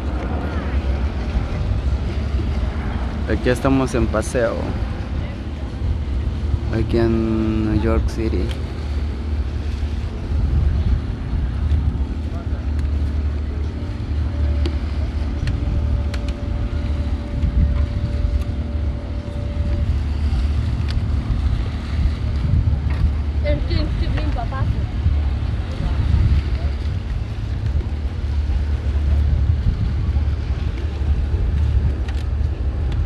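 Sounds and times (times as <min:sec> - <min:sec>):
boat engine rumbling: 0:00.0 - 0:33.0
faint voices: 0:00.0 - 0:33.0
higher steady hum: 0:00.0 - 0:33.0
wind buffeting microphone: 0:00.0 - 0:33.0.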